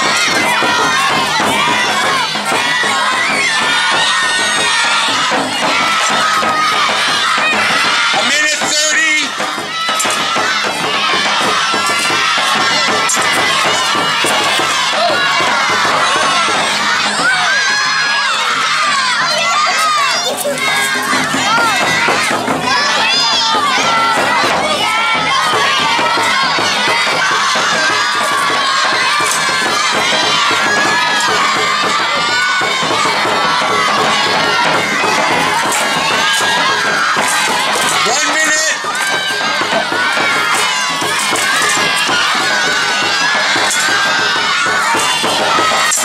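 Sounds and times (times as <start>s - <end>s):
children shouting and cheering: 0.0s - 46.0s.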